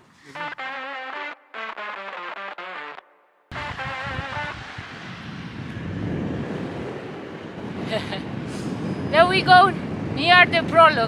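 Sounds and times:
wind rushing over microphone: 3.5 - 11.0.

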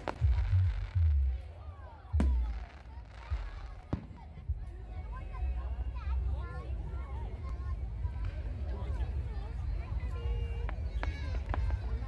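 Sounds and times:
fireworks cracking: 0.0 - 4.4
low rumble: 0.0 - 5.2
people's voices: 0.0 - 12.0.

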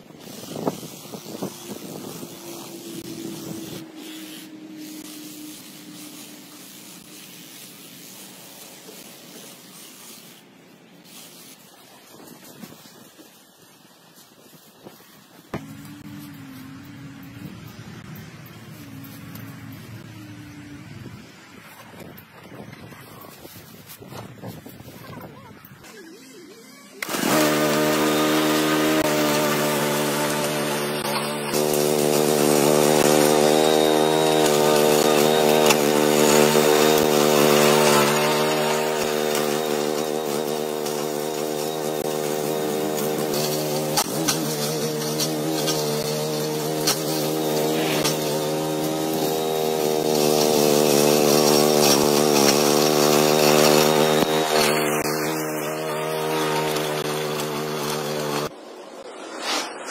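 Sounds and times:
small gasoline engine running: 0.2 - 7.5, 15.6 - 20.6, 27.0 - 58.5.

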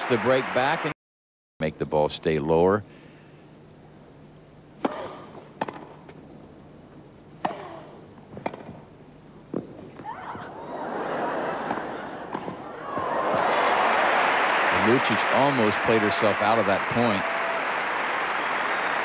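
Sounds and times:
crowd applause: 0.0 - 0.9, 10.4 - 19.0
tennis racket hitting ball: 4.8 - 6.0, 7.4 - 7.8, 8.4 - 8.8, 11.7 - 13.5
crowd murmuring: 10.0 - 14.0.

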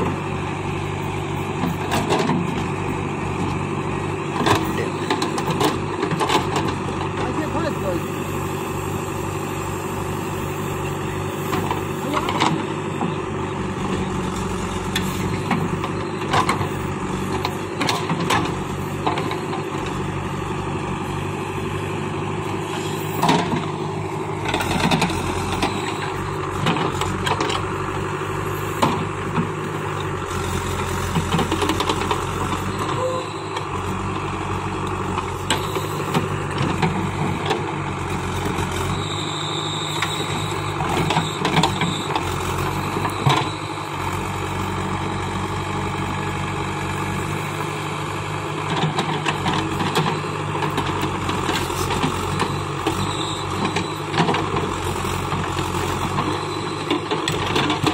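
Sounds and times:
diesel engine running: 0.0 - 57.9.

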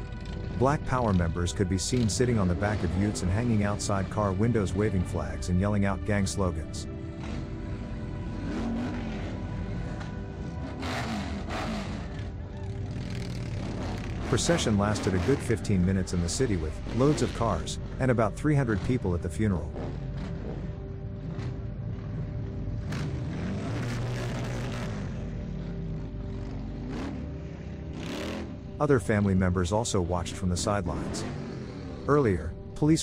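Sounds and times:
background music: 0.0 - 33.0
motorcycle and car engines: 0.0 - 33.0.

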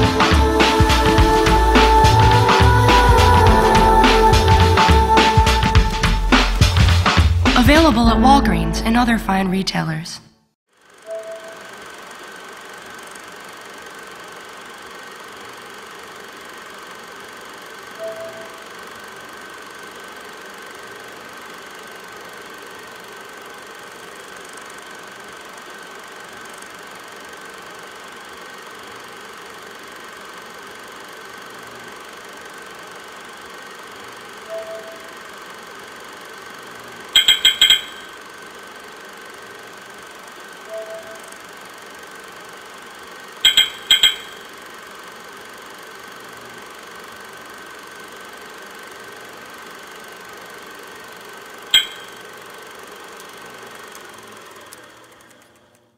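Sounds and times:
electronic humming drone: 0.0 - 6.6, 18.0 - 18.8, 34.4 - 35.4, 40.6 - 41.8, 43.4 - 44.7, 51.7 - 52.2
soft short electronic tone: 11.1 - 11.7, 18.0 - 18.6, 34.4 - 35.1, 37.2 - 38.1, 40.7 - 41.3, 43.4 - 44.4
sharp bright electronic clicks: 37.2 - 38.2, 43.4 - 44.5, 51.7 - 52.2.

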